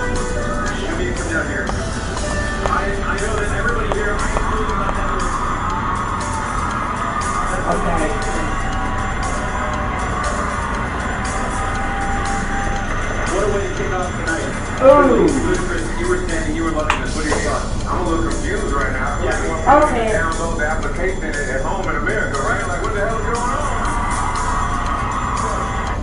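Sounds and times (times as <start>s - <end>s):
music from a speaker: 0.0s - 13.6s, 14.8s - 16.2s, 21.3s - 26.0s
voice over music: 14.7s - 16.8s, 19.2s - 20.7s.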